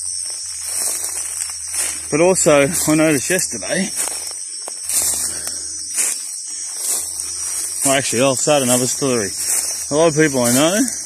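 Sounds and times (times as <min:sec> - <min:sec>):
footsteps crunching dry leaves: 0:00.0 - 0:11.0
insects droning: 0:00.0 - 0:11.0.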